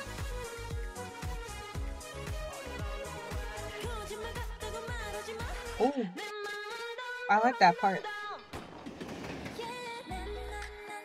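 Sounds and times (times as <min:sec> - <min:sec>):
pop song with female vocals: 0:00.0 - 0:08.6, 0:09.4 - 0:11.0.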